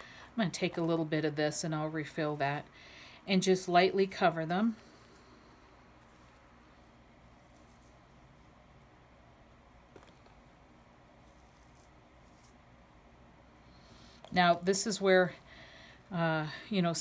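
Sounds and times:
fingers rustling potting mix: 0.0s - 17.0s.

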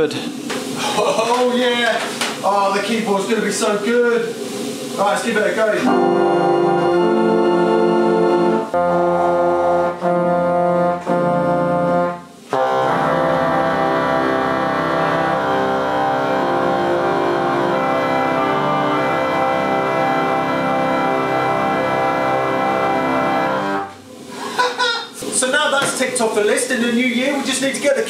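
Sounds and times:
pipe organ sustained chords: 4.3s - 24.0s.

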